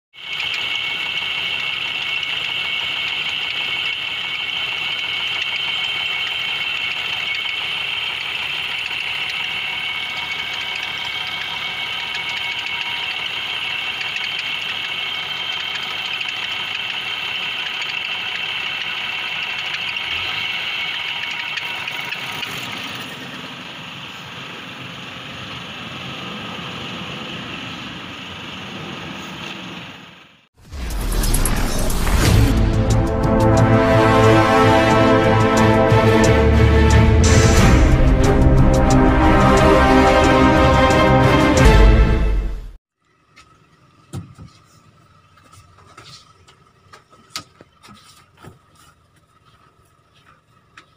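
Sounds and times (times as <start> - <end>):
diesel engine running: 0.2 - 50.9
high whine: 30.6 - 42.7.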